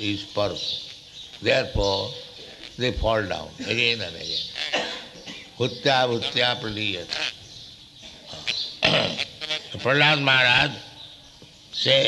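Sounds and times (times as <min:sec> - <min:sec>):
man coughing: 0:03.6 - 0:04.0, 0:04.7 - 0:05.6
grunt-like throat sound: 0:08.3 - 0:09.3.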